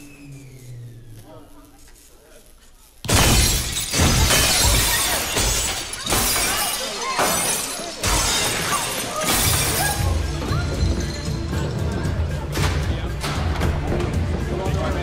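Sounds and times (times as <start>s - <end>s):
glass shattering: 3.1s - 11.4s
people crying out: 4.2s - 11.2s.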